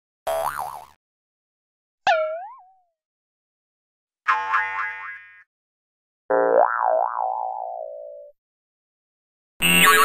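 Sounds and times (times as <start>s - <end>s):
cartoon boing sound effects: 0.3s - 1.0s, 2.1s - 2.9s, 4.3s - 5.5s, 6.3s - 8.3s.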